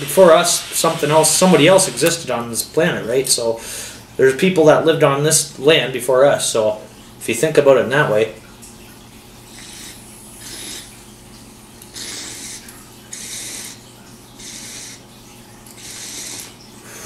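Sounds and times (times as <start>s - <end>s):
water bubbling in glass pipe: 8.4s - 17.0s.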